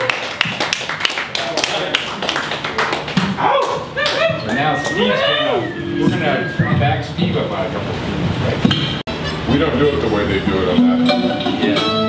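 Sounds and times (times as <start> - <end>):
audience clapping: 0.0 - 5.0
voices talking: 4.0 - 10.8.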